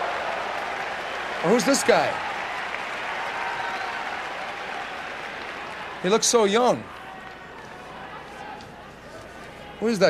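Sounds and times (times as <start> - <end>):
crowd applauding: 0.0 - 8.7.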